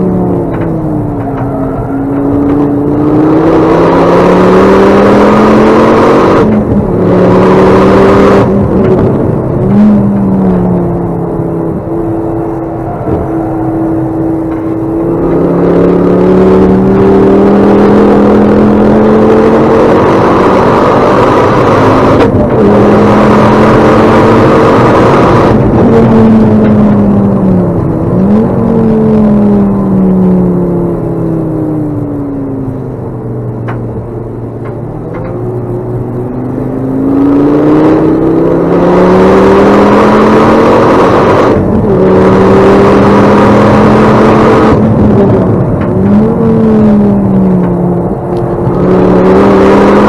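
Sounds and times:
car engine accelerating hard: 0:00.0 - 0:50.0.

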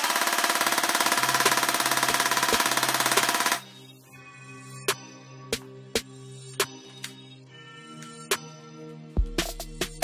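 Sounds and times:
toy rifle full-auto burst: 0:00.0 - 0:03.6
background music: 0:00.2 - 0:10.0.

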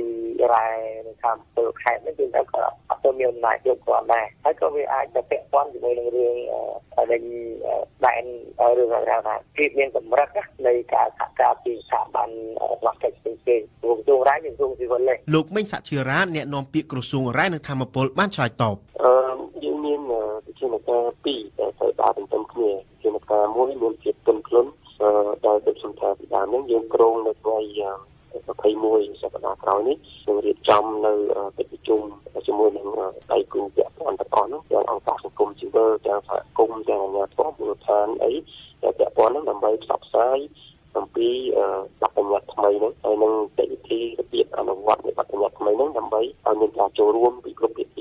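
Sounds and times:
person talking over telephone line: 0:00.0 - 0:48.0.

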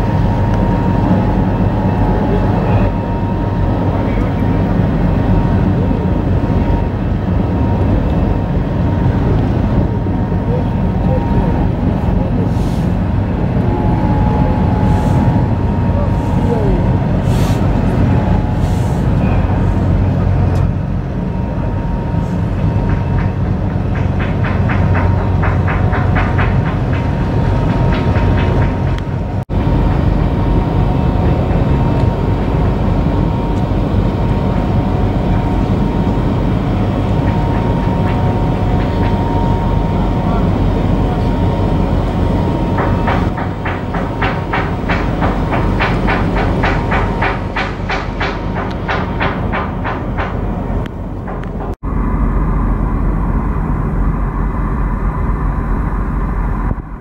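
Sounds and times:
faint steady whine: 0:00.0 - 0:23.1, 0:51.8 - 0:57.0
diesel engines rumbling: 0:00.0 - 0:57.0.

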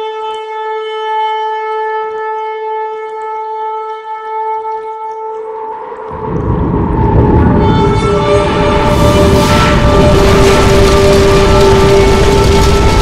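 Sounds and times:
shofar blast: 0:00.0 - 0:13.0
dark intro music: 0:04.2 - 0:13.0.

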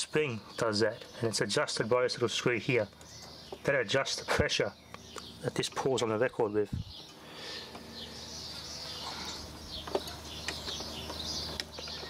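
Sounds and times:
birds chirping: 0:00.0 - 0:12.0
low steady hum: 0:00.0 - 0:12.0.

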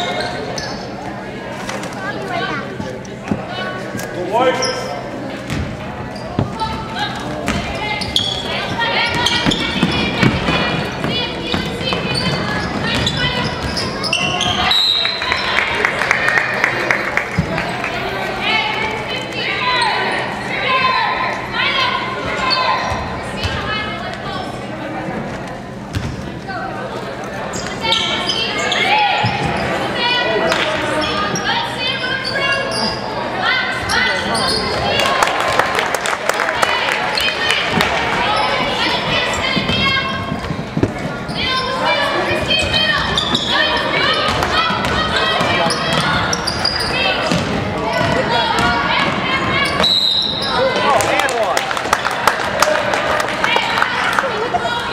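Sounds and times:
basketball bouncing on hardwood floor: 0:47.3 - 0:48.7.

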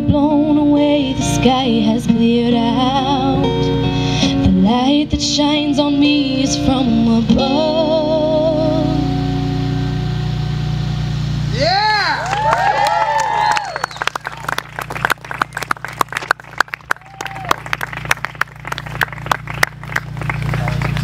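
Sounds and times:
acoustic guitar chord ringing: 0:00.0 - 0:11.6
audience whooping and cheering: 0:11.6 - 0:21.0
hand clapping: 0:12.2 - 0:21.0.

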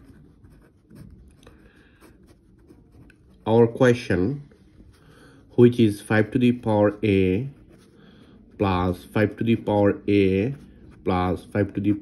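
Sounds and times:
pen scratching on paper: 0:00.0 - 0:03.9, 0:05.7 - 0:12.0.

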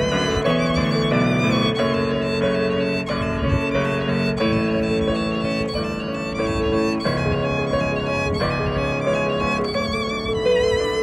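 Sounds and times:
bowed violin melody: 0:00.0 - 0:11.0
sustained piano chords: 0:00.0 - 0:11.0.

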